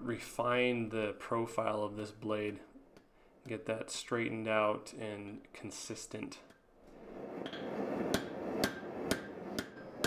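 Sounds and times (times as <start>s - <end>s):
steady rushing noise: 6.9s - 10.0s
hammer ringing on anvil: 8.2s - 10.0s.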